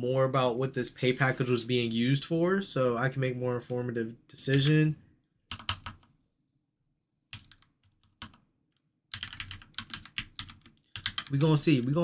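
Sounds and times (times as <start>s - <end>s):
computer keyboard typing: 5.5s - 6.1s, 7.3s - 8.4s, 9.1s - 11.5s.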